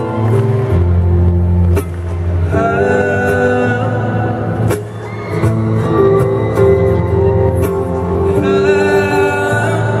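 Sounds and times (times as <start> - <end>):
amplified acoustic guitar music: 0.0 - 10.0.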